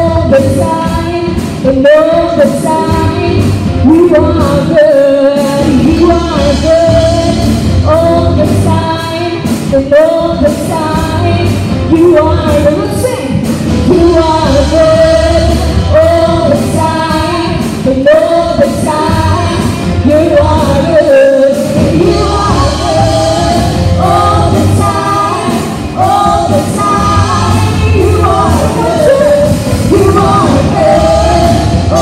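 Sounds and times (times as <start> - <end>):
bass guitar: 0.0 - 32.0
keyboard: 0.0 - 32.0
woman singing lead: 0.0 - 32.0.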